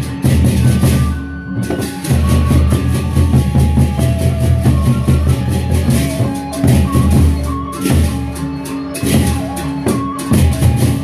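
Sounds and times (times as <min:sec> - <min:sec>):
barrel drums beating: 0:00.0 - 0:11.0.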